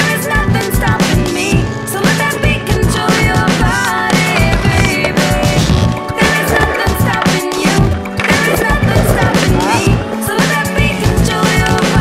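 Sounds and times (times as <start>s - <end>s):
background music with steady beat: 0.0s - 12.0s
skateboard grinding on concrete: 3.7s - 12.0s.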